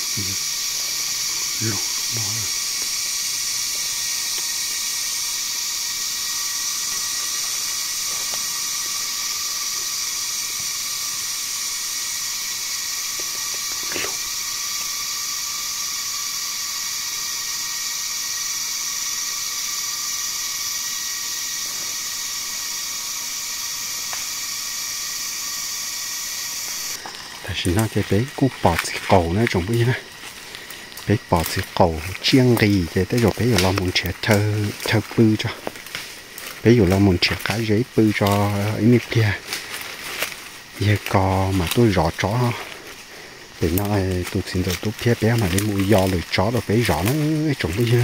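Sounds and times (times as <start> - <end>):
insect chorus drone: 0.0 - 48.0.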